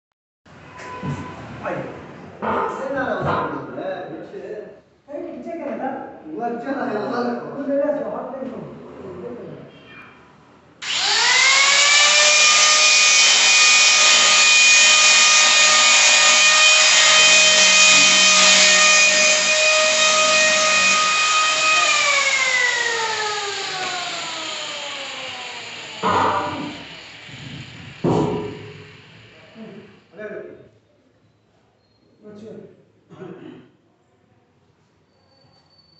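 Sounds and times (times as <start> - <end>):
power tool motor whining: 10.8 - 30.0.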